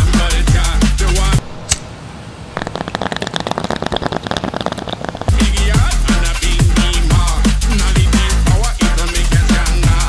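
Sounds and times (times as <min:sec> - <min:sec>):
drum and bass music: 0:00.0 - 0:01.4, 0:05.3 - 0:10.0.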